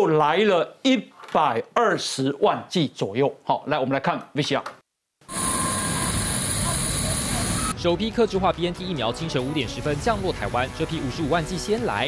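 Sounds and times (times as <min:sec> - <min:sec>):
jet turbine whine: 0:05.3 - 0:07.8.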